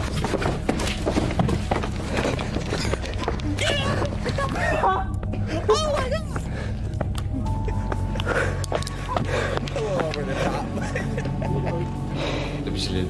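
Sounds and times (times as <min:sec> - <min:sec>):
background music with low drone: 0:00.0 - 0:13.0.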